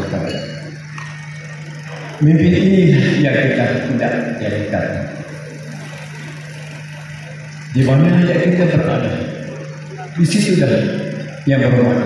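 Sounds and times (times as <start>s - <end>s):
man speaking over microphone: 0.0s - 0.5s, 2.2s - 5.3s, 7.7s - 9.4s, 10.0s - 12.0s
steady low hum: 0.0s - 12.0s.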